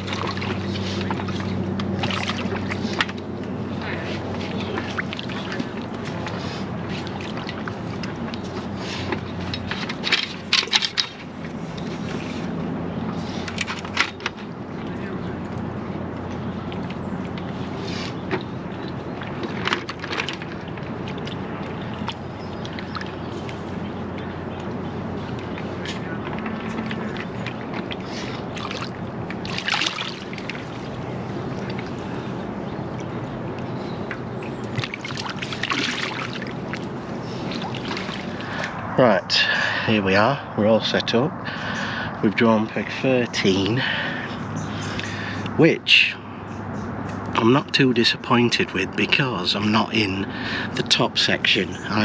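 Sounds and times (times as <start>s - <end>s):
water splashes: 0.0s - 15.1s, 16.4s - 39.9s
water sloshing: 0.0s - 39.9s
steady low hum: 0.0s - 52.0s.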